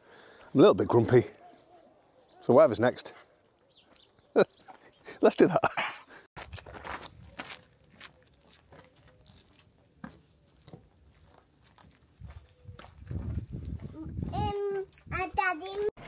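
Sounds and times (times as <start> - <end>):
footsteps on gravel: 6.4 - 14.3.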